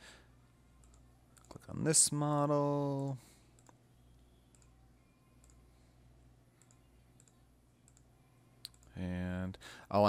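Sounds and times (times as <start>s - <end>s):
low steady hum: 0.0s - 10.0s
computer mouse clicks: 0.8s - 1.6s, 3.5s - 3.8s, 4.5s - 4.8s, 5.4s - 5.6s, 6.6s - 9.0s.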